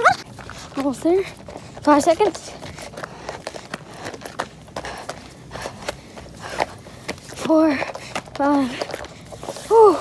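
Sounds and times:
running footsteps on gravel: 0.0s - 10.0s.

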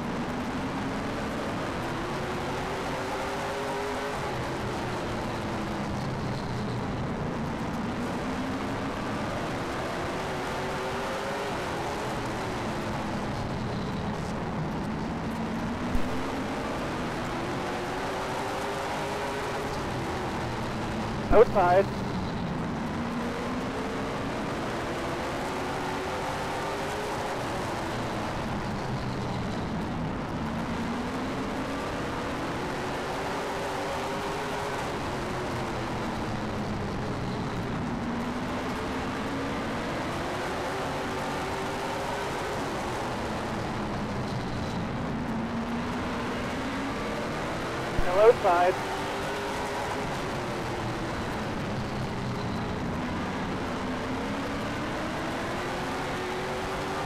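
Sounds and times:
racing car engine: 0.1s - 57.0s.

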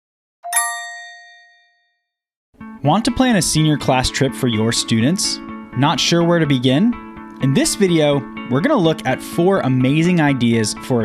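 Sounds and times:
bell-like chime ringing: 0.4s - 2.0s.

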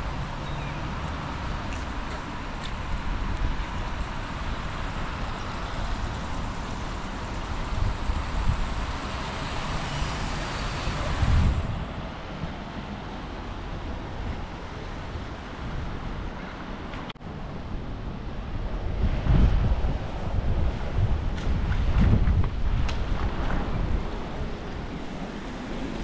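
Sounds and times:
vehicles passing on wet road: 0.0s - 26.0s.

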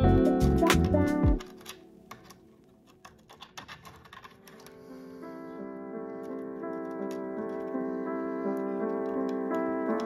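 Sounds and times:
background music: 0.0s - 3.6s, 4.4s - 10.0s
small clicks and rattles of wires: 0.6s - 4.8s, 6.2s - 7.9s.

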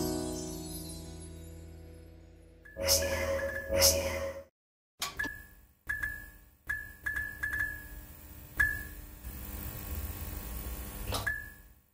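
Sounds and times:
sharp electric clicks with pings: 5.1s - 7.9s.

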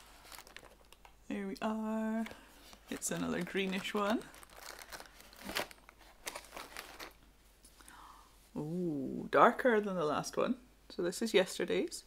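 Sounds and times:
cardboard and packaging crinkling: 0.0s - 7.2s.

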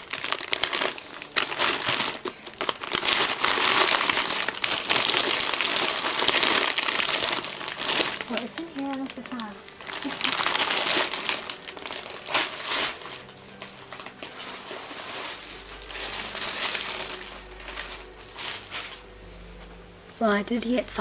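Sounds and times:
packaging crinkling: 0.0s - 19.3s.

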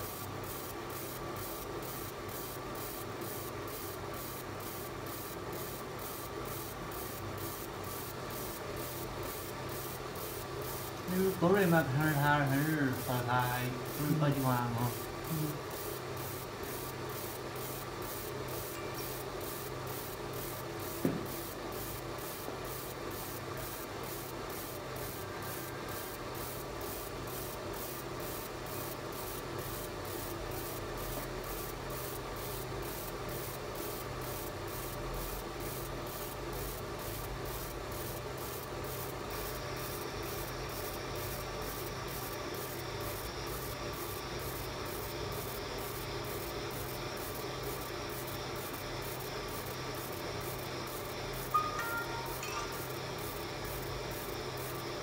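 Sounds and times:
laser engraver rasping hiss: 0.0s - 55.0s.

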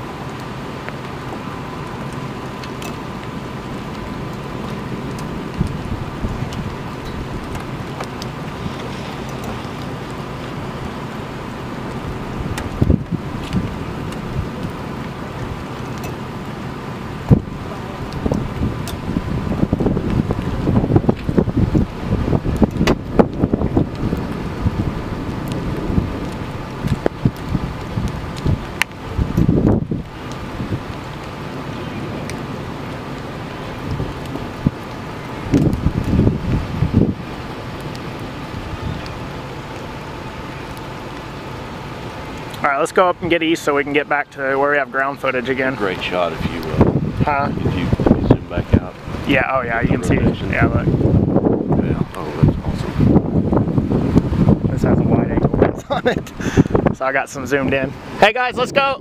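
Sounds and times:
rain hiss: 0.0s - 59.0s
wind buffeting microphone: 0.0s - 59.0s.

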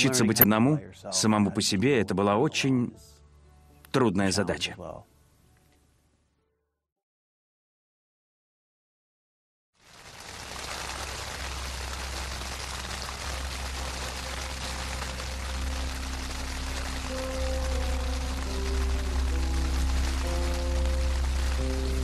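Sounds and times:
heavy rain falling: 9.8s - 22.0s
slow held music notes: 13.3s - 22.0s.

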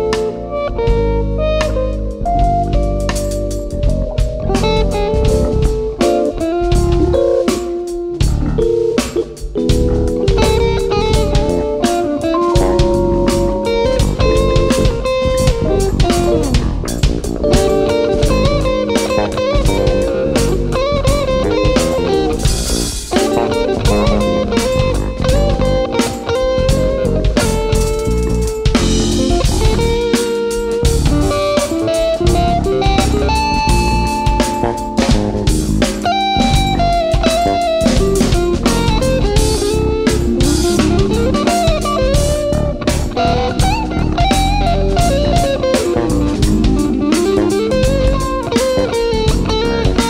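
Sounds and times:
drum kit: 0.0s - 50.0s
electric guitar lead melody: 0.0s - 50.0s.

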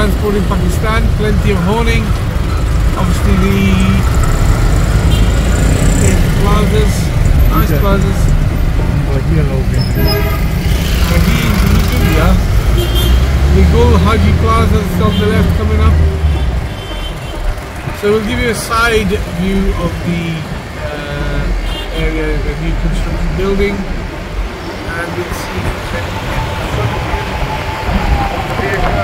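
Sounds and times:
auto-rickshaws passing close: 0.0s - 29.0s
vehicle engines rumbling: 0.0s - 29.0s.

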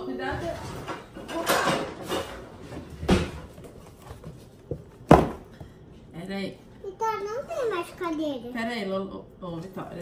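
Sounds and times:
utensils moved on counter: 0.4s - 3.5s.

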